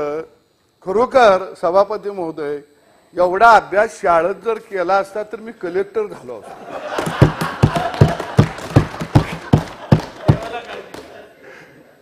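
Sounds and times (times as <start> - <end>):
people laughing and murmuring: 6.4 - 12.0
thumping on desks: 6.9 - 11.1.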